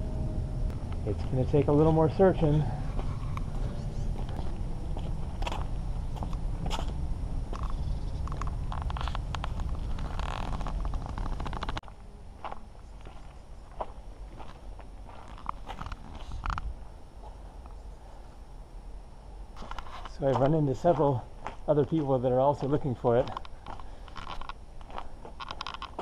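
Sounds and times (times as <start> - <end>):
low microphone rumble: 0.0 - 19.6
footsteps on cobblestones: 20.3 - 26.0.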